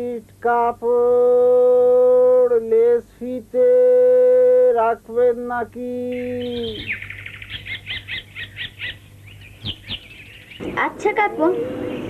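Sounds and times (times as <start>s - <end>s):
small bird chirping: 5.9s - 12.0s.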